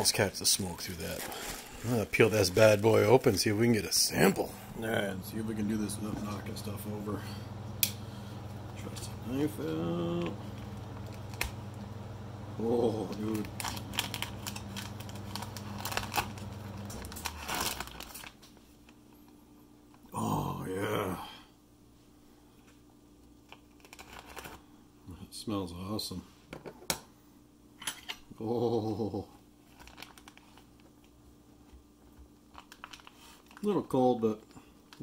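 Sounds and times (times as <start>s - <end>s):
low steady hum: 0.0s - 35.0s
plastic bag crinkling and tearing: 0.5s - 4.4s, 10.9s - 11.6s, 12.7s - 19.0s, 23.5s - 24.6s, 29.6s - 31.1s, 32.5s - 34.2s.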